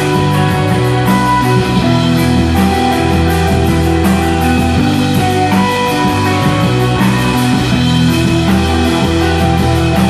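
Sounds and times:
drums: 0.0s - 10.0s
electric guitars sustained notes: 0.0s - 10.0s.

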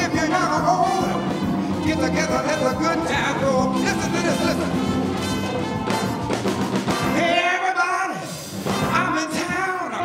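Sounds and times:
drums marking steady beat: 0.0s - 7.6s
live blues band: 0.0s - 10.0s.

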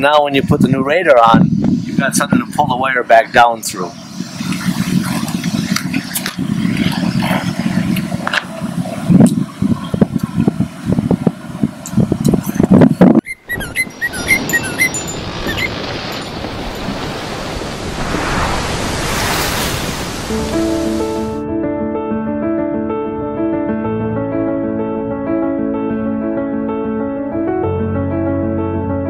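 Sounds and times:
wind buffeting microphone: 0.0s - 21.5s.

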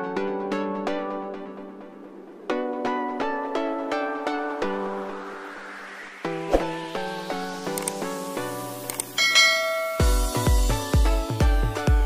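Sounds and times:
plucked-string background music: 6.2s - 12.0s
bell chime sound effect: 9.2s - 10.5s.

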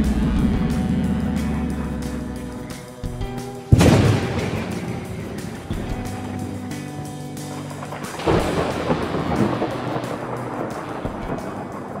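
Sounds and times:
held musical notes: 0.0s - 12.0s
rain hiss: 0.0s - 12.0s
thunder crack rumbling: 0.0s - 12.0s.

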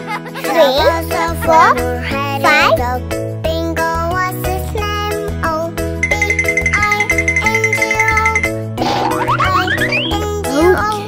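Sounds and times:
children's backing music: 0.0s - 11.0s
cartoon rising glide effect: 6.1s - 10.2s.

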